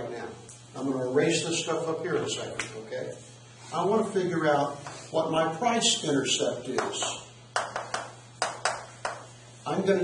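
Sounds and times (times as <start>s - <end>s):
steady low hum: 0.0s - 10.0s
chalk tapping on a blackboard: 6.7s - 9.3s.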